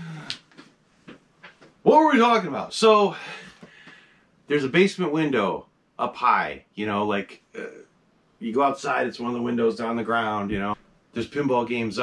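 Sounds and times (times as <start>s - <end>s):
man speaking: 1.8s - 3.3s, 4.5s - 7.8s, 8.4s - 12.0s.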